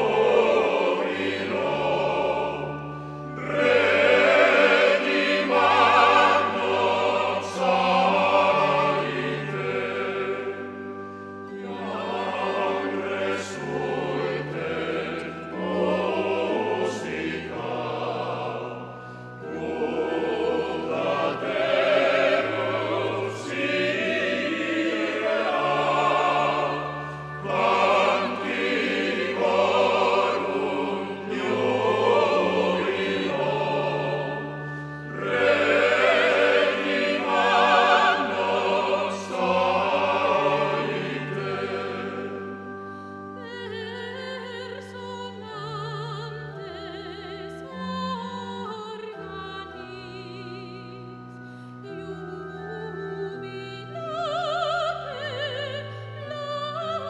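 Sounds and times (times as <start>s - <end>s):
male voice choir singing: 0.0s - 10.6s, 11.6s - 18.8s, 19.4s - 42.5s.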